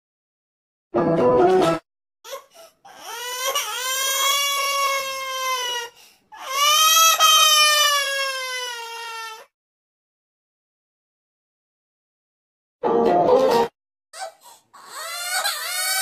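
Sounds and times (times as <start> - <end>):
cartoon crying sobs and wails: 2.3 - 9.5, 14.2 - 16.0.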